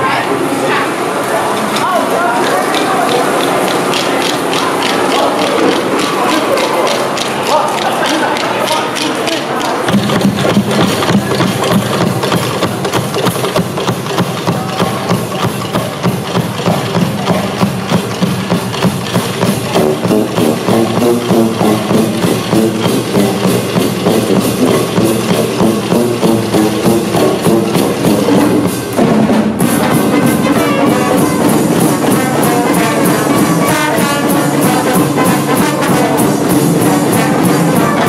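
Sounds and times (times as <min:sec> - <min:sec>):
pitched brass notes: 0:00.0 - 0:38.0
drums playing driving groove: 0:02.4 - 0:38.0.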